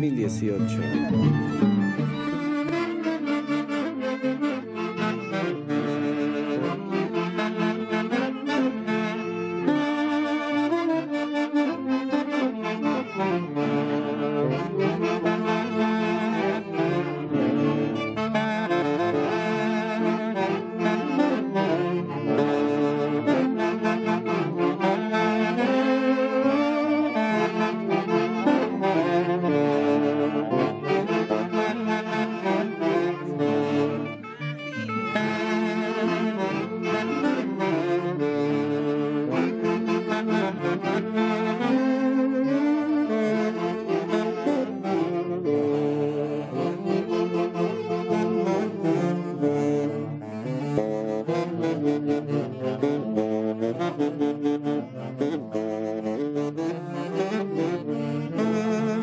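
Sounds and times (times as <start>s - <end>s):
saxophone band dance tune: 0.0s - 59.0s.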